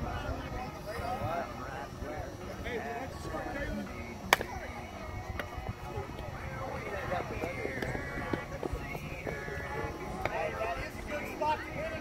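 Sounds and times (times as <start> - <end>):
players' voices: 0.0 - 12.0
bat hitting ball: 4.3 - 4.5.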